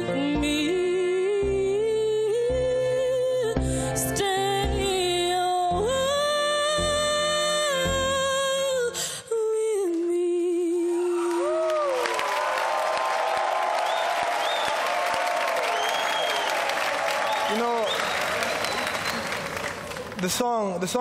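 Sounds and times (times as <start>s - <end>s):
scattered cheers: 11.1s - 20.2s
studio audience applauding: 11.1s - 20.6s.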